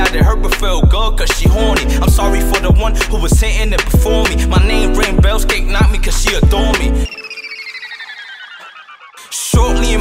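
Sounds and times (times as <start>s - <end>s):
song beat: 0.0s - 8.0s, 9.2s - 10.0s
falling pulsing electronic beeping: 7.0s - 9.5s.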